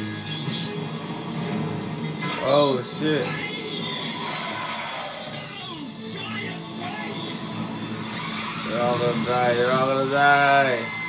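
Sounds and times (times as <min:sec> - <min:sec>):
man's voice: 0:08.6 - 0:11.0.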